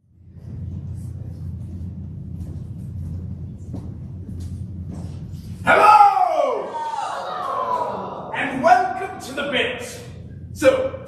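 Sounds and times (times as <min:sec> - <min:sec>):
low room rumble: 0:00.0 - 0:11.0
person shouting: 0:05.7 - 0:08.2.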